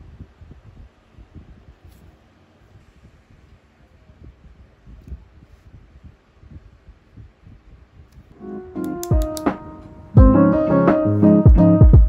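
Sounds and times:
keyboard notes: 0:08.4 - 0:12.0
beat with deep drum thumps: 0:10.2 - 0:10.4, 0:11.4 - 0:12.0.

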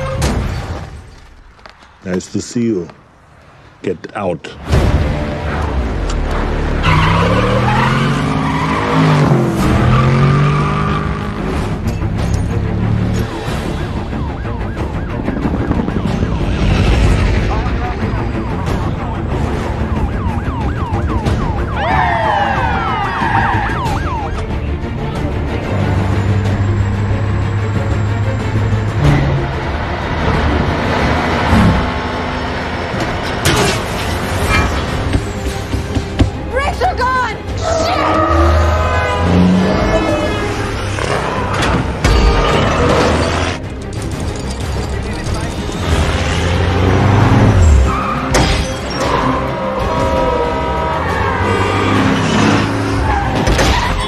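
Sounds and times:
film score music: 0:00.0 - 0:54.0
passing traffic: 0:00.0 - 0:54.0.

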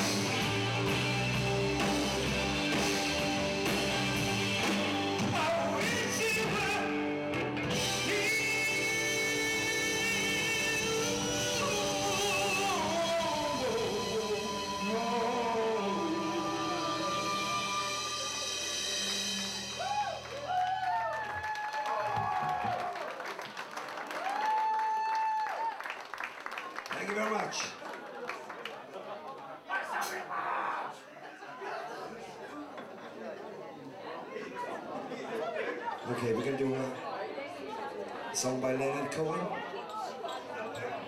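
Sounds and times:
live rock band playing: 0:00.0 - 0:20.6.

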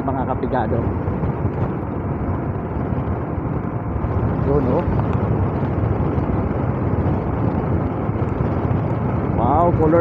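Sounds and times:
vehicle road noise roar: 0:00.0 - 0:10.0.

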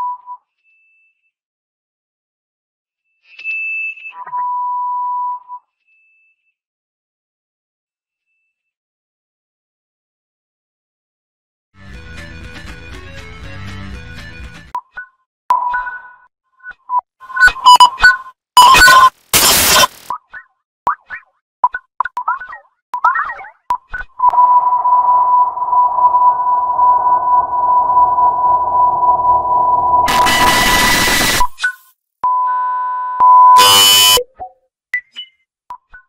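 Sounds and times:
distorted alert tone bursts: 0:18.6 - 0:20.1, 0:25.4 - 0:31.6, 0:33.5 - 0:34.2
burst of noise: 0:18.7 - 0:20.1, 0:30.1 - 0:31.6.

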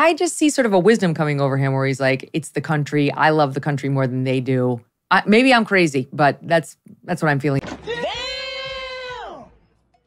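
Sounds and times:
man's high-pitched exclamation: 0:07.9 - 0:09.5.

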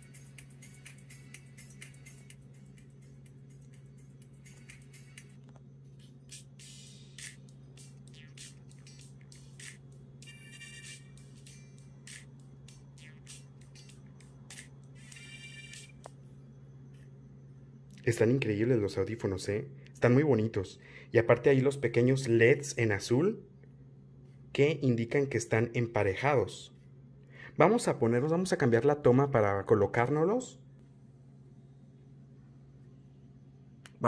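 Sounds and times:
tinny music from earbuds: 0:00.0 - 0:23.4
low hum: 0:00.0 - 0:28.3, 0:30.6 - 0:34.0.

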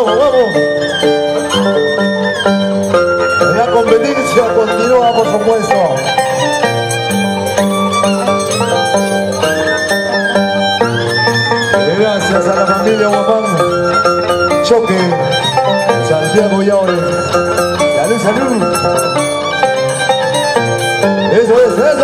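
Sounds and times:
plucked harp notes: 0:00.0 - 0:22.0
violin melody: 0:00.0 - 0:22.0.

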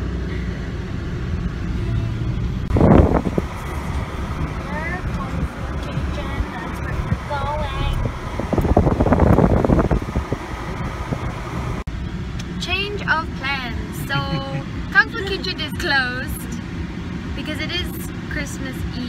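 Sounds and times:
car driving cabin rumble: 0:00.0 - 0:19.0
young woman's voice: 0:04.6 - 0:08.0, 0:12.6 - 0:16.6, 0:17.4 - 0:19.0.

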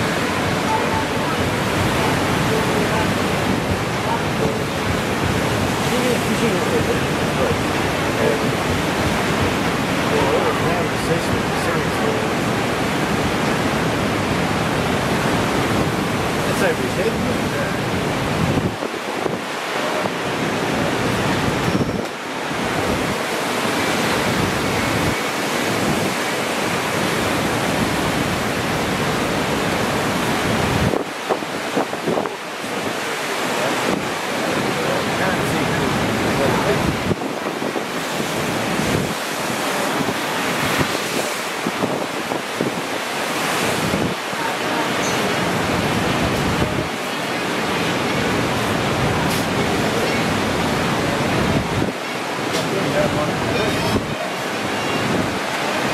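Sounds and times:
ocean surf breaking: 0:00.0 - 0:55.9
wind buffeting microphone: 0:00.0 - 0:55.9.

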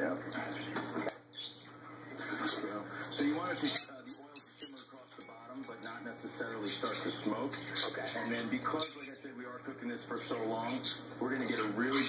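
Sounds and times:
television speech: 0:00.0 - 0:12.0.

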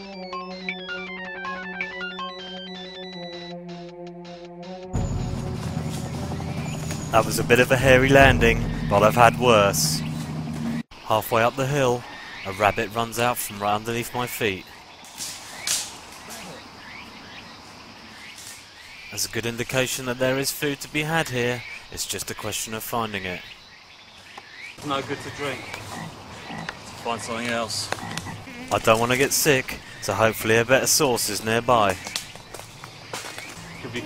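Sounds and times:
footsteps on dry leaves and twigs: 0:05.1 - 0:07.2, 0:31.1 - 0:34.0.

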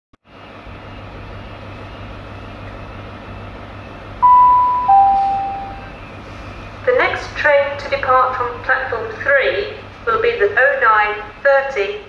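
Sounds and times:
low rumble and hum of trains: 0:00.3 - 0:12.0
two-note station chime: 0:04.2 - 0:05.9.

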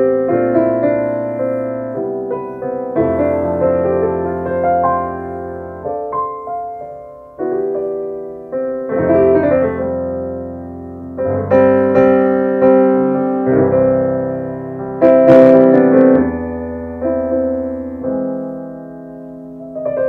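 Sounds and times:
digital piano chords: 0:00.0 - 0:20.0.

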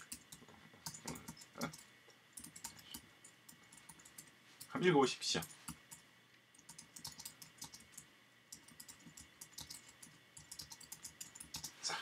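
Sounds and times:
typing on keyboard: 0:00.0 - 0:04.3, 0:06.6 - 0:11.7.

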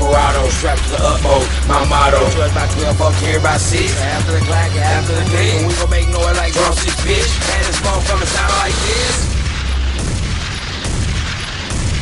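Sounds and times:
hip-hop track: 0:00.0 - 0:12.0
rapid gunfire: 0:05.2 - 0:12.0.

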